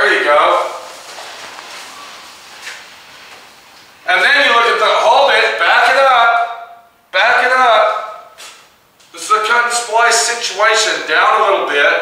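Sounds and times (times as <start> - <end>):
low room hiss: 0.0 - 12.0
footsteps: 0.4 - 4.1, 8.4 - 9.2.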